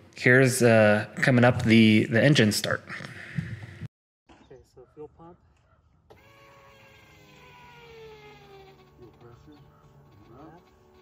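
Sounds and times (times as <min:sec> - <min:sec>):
electric fuel pump whining: 0:06.1 - 0:11.0.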